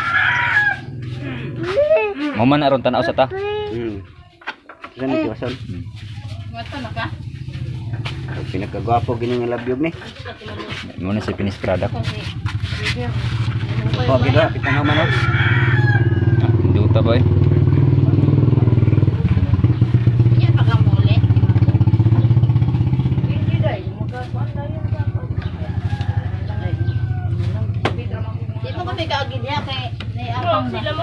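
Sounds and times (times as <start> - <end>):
voices: 0.0 - 31.0.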